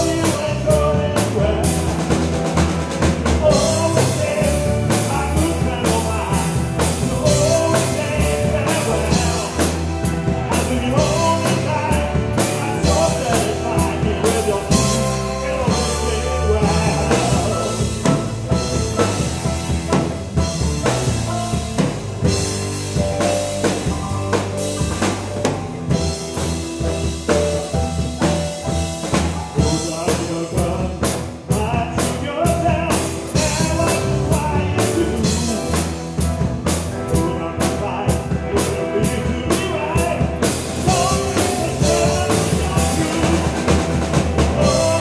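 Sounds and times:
bass guitar: 0.0s - 45.0s
drum kit: 0.0s - 45.0s
keyboards: 0.0s - 45.0s.

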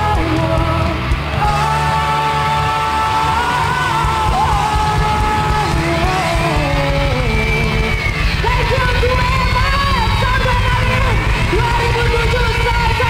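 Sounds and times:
bass guitar: 0.0s - 13.0s
drums and cymbals: 0.0s - 13.0s
electric guitars with bending notes: 0.0s - 13.0s.

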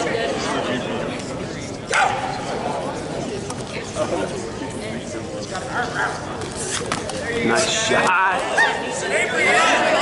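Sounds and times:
spectator chatter in a gym hall: 0.0s - 10.0s.

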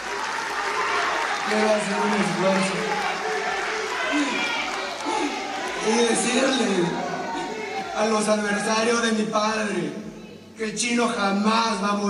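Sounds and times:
audience applauding: 0.0s - 8.6s
voices in crowd: 0.0s - 12.0s.

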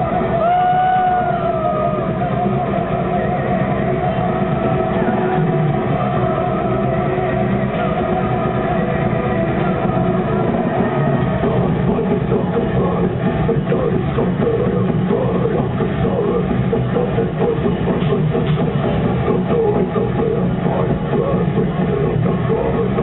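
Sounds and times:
muffled live metal band: 0.0s - 23.0s.

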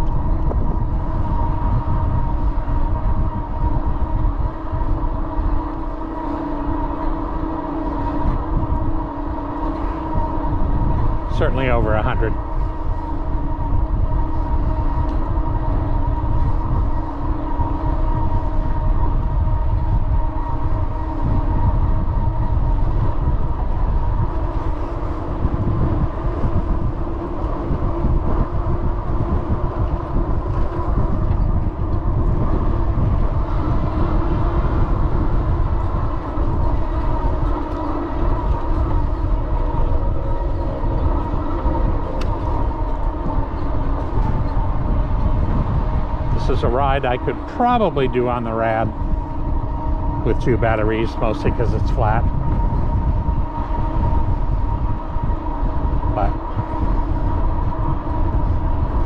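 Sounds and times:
electric bike motor whining: 0.0s - 59.0s
wind rumble on microphone: 0.0s - 59.0s.

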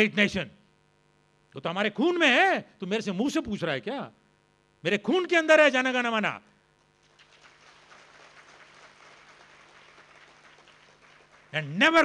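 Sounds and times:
steady low hum: 0.0s - 5.3s
faint audience applause: 6.8s - 12.0s.

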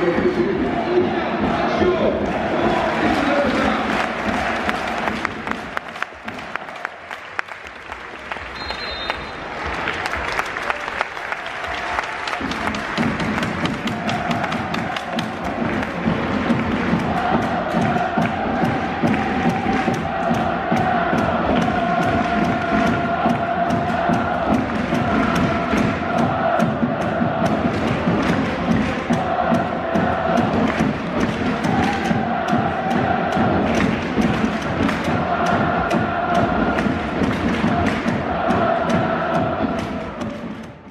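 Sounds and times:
crowd din: 0.0s - 6.7s, 12.4s - 40.9s
crowd singing a chant: 0.0s - 7.0s, 12.4s - 40.9s
applause: 2.2s - 20.5s, 27.4s - 38.6s.

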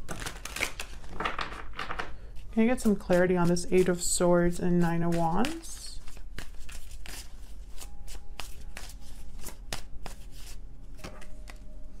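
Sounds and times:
cards being shuffled: 0.0s - 11.6s.

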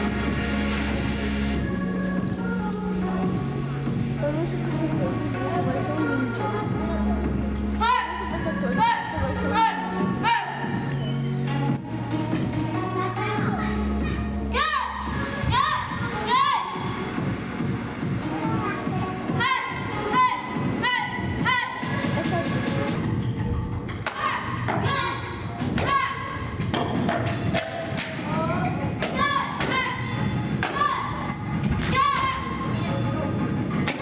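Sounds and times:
backing music: 0.0s - 34.0s
child shouting: 13.5s - 16.9s, 19.3s - 21.8s, 24.2s - 26.4s, 29.1s - 30.0s, 30.7s - 31.3s, 31.9s - 32.6s
children shouting kiai: 24.1s - 26.4s, 29.0s - 30.0s, 30.6s - 32.6s.

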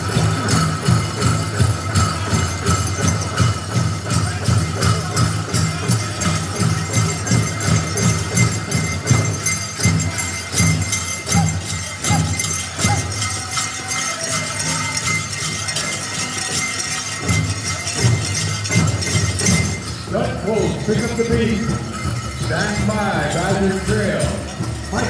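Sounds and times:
bells jingling: 0.0s - 25.0s
large drum beat: 0.0s - 25.0s.

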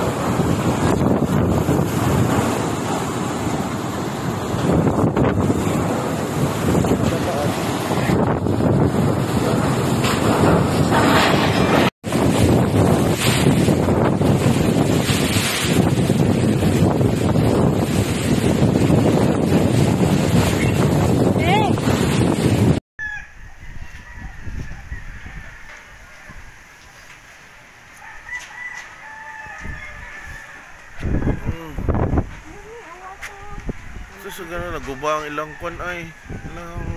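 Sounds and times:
strong wind on microphone: 0.0s - 26.6s, 28.6s - 36.9s
rooster crowing: 23.0s - 26.8s, 27.9s - 31.8s, 34.0s - 36.9s.

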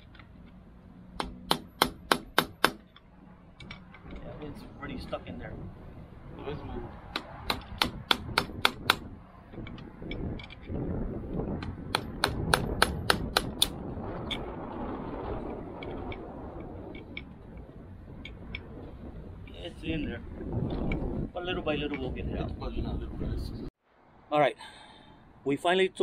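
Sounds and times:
hammer tapping metal punch: 1.2s - 3.1s.

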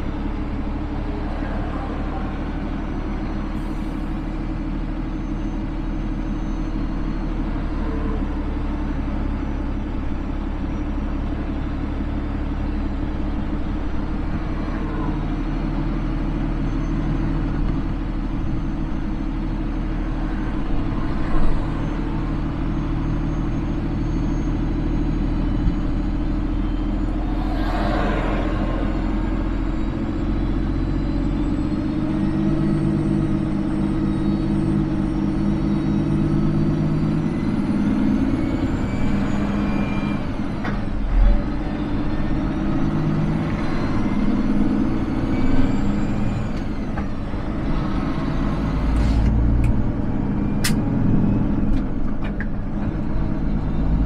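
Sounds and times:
truck diesel engine running: 0.0s - 54.0s.

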